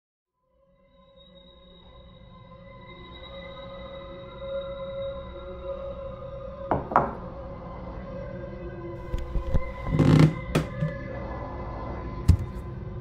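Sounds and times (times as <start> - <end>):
dark droning film score: 0.6 - 9.0.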